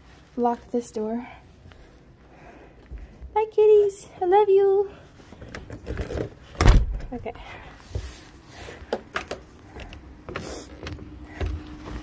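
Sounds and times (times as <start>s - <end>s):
door opening and shutting: 5.6s - 7.2s.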